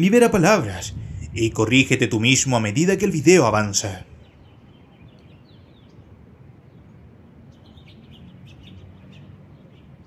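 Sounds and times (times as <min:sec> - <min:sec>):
low outdoor rumble: 0:00.0 - 0:07.6
birds chirping: 0:00.0 - 0:10.0.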